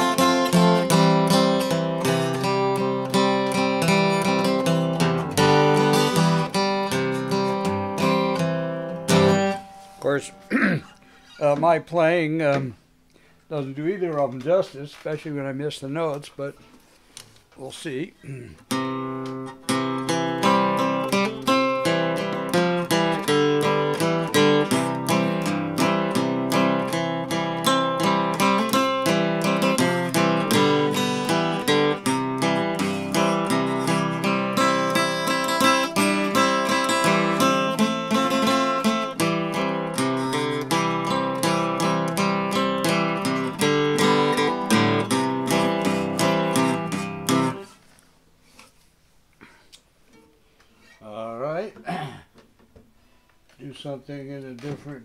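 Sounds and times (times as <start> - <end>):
acoustic guitar picked tune: 0.0 - 13.4, 18.4 - 51.2
faint guitar handling: 9.1 - 11.8.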